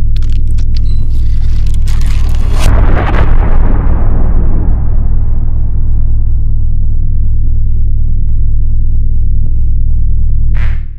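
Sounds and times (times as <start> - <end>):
deep steady drone: 0.0 - 10.9.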